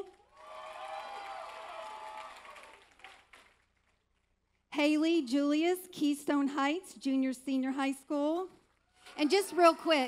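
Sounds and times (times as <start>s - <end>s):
people cheering: 0.3s - 3.2s
audience applauding: 0.3s - 3.9s.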